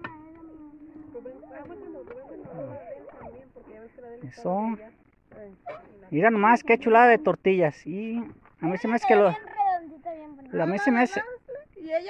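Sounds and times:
people and children talking: 0:00.0 - 0:12.0.

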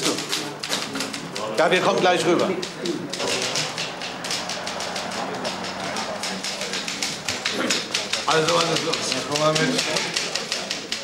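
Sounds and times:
typewriter keys clacking: 0:00.0 - 0:11.0.

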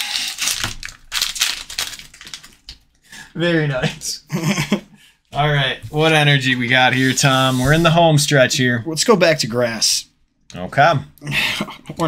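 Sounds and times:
foil wrapper crinkling: 0:00.0 - 0:02.9.

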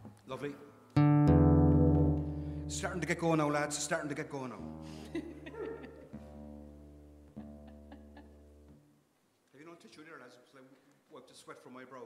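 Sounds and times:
acoustic guitar chord ringing: 0:01.0 - 0:05.1
plucked guitar notes: 0:01.0 - 0:08.8.

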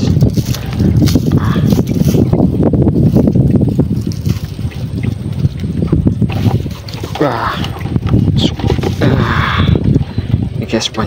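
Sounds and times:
handling clicks and rustles: 0:00.0 - 0:02.4, 0:03.1 - 0:09.2
wind buffeting microphone: 0:00.0 - 0:11.0.

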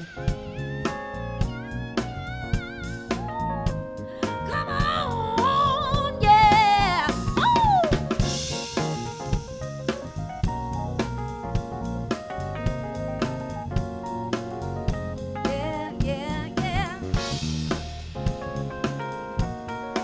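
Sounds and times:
drum kit steady beat: 0:00.0 - 0:20.0
stage piano chords: 0:00.0 - 0:20.0.

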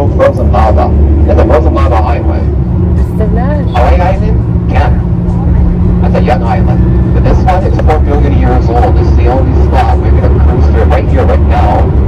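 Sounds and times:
bus engine drone: 0:00.0 - 0:12.0
indistinct voices: 0:00.0 - 0:12.0.

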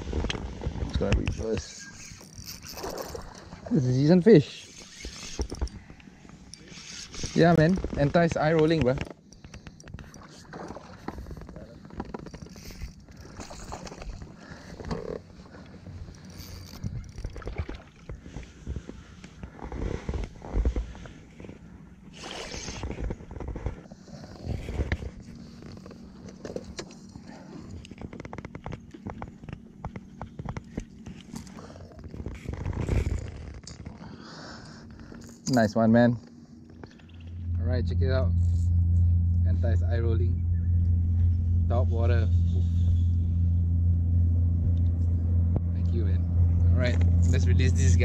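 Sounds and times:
knocks and scrapes against kayak hull: 0:04.6 - 0:27.0.

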